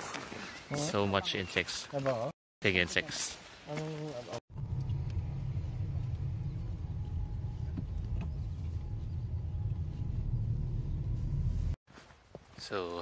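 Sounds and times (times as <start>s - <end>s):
car engine and road noise: 4.5s - 11.8s.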